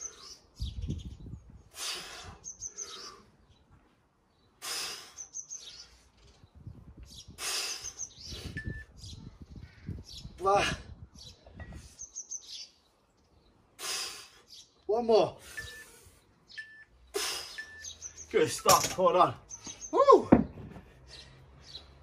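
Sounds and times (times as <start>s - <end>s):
small bird chirping: 2.2s - 10.4s, 11.1s - 13.7s, 15.5s - 20.1s.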